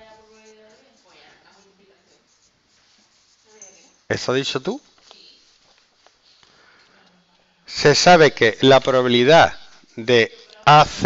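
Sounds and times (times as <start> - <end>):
marker scratching on whiteboard: 0.0 - 4.1.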